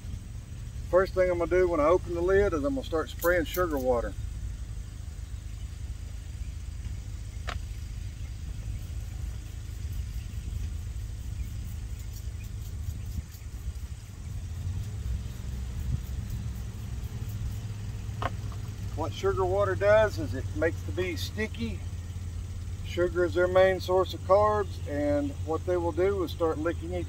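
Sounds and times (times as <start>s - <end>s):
distant lawn mower engine drone: 0.0s - 27.0s.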